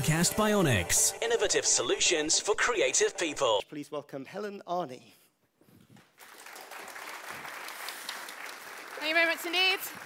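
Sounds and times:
audience applauding: 0:06.2 - 0:10.0.

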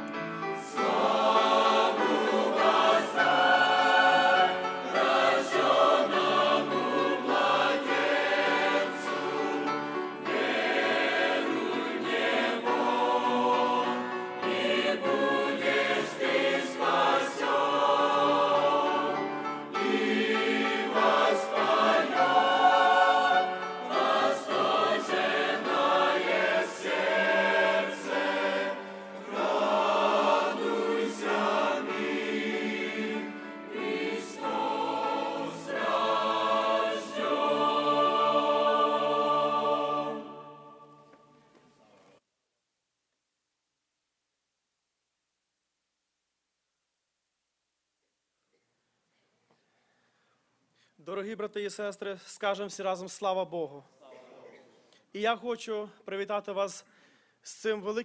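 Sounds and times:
mixed choir singing: 0:00.1 - 0:41.5.

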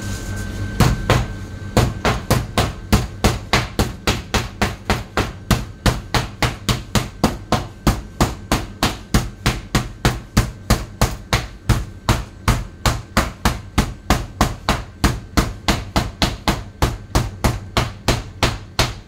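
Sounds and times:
mallet pounding meat: 0:00.8 - 0:19.0.

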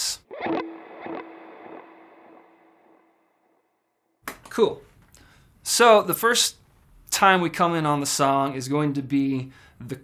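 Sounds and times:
electric guitar with echoing delay: 0:00.2 - 0:03.6.

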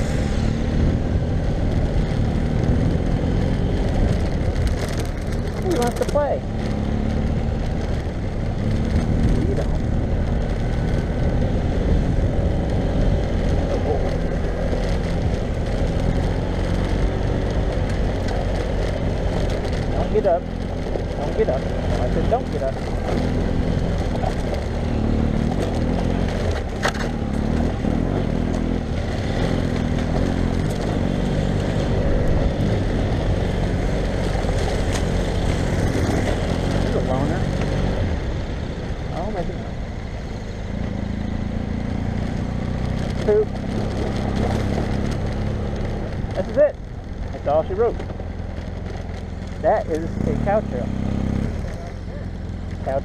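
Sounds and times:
motorcycle engine running: 0:00.0 - 0:53.0.

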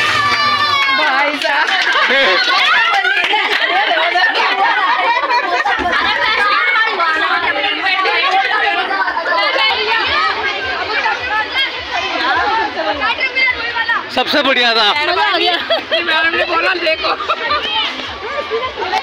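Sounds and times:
people chattering: 0:00.0 - 0:19.0.

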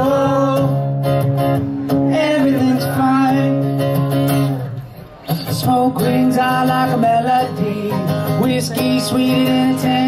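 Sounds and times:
man singing: 0:00.0 - 0:01.2, 0:01.9 - 0:04.2, 0:05.3 - 0:10.0
acoustic guitar strumming: 0:00.0 - 0:10.0.

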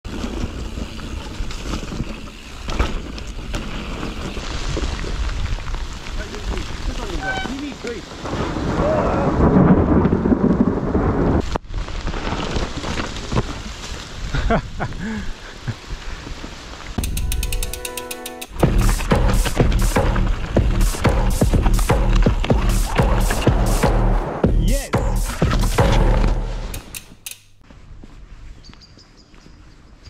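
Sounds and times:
bike tyres rumbling over dirt: 0:00.0 - 0:17.1, 0:18.6 - 0:24.4
bike knocking over bumps: 0:00.1 - 0:05.0.

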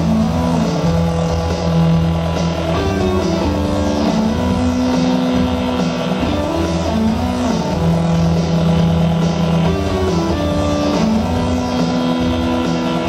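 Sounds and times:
drums and cymbals: 0:00.0 - 0:13.0
electric guitar sustained notes: 0:00.0 - 0:13.0
live rock band playing: 0:00.0 - 0:13.0.

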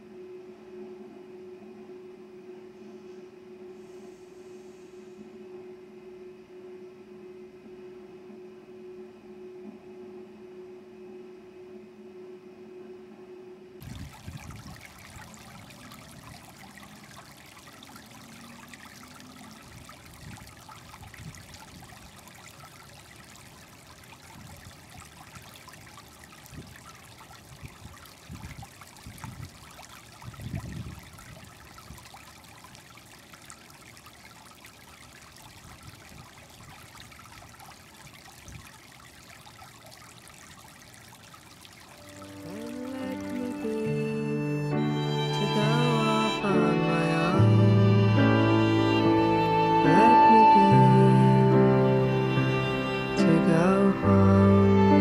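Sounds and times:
steady outdoor hiss: 0:00.0 - 0:55.0
wind rumbling on microphone: 0:13.8 - 0:22.6, 0:24.0 - 0:25.6, 0:26.3 - 0:32.2.

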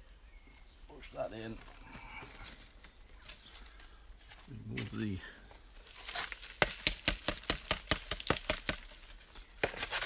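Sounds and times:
dry leaves crackling: 0:00.0 - 0:04.6, 0:05.7 - 0:07.5.

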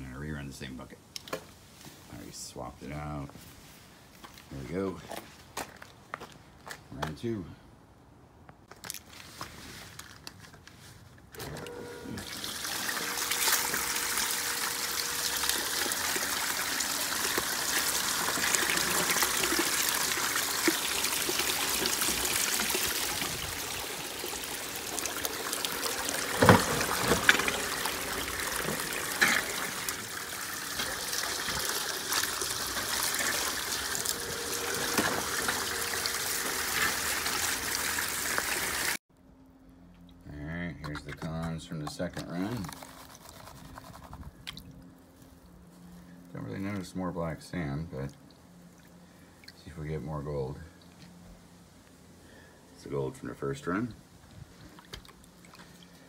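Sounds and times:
water and gravel splashing down sluice: 0:12.3 - 0:39.0.

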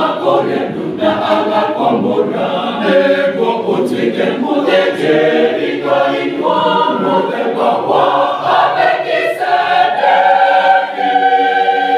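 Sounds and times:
mixed choir singing in harmony: 0:00.0 - 0:11.9.

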